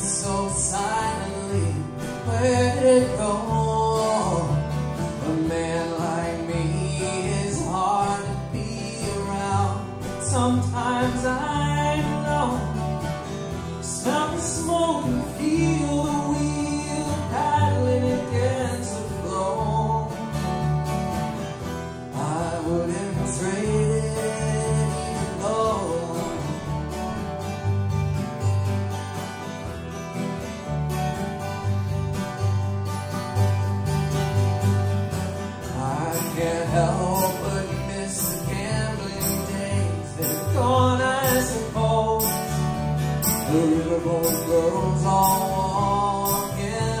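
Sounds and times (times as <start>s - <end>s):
acoustic guitars: 0.0s - 47.0s
plucked upright bass: 0.0s - 47.0s.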